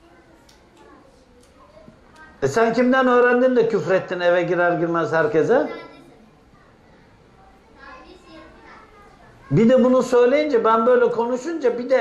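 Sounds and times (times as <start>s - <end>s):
faint high-pitched voice: 0.0s - 2.4s, 5.7s - 9.6s.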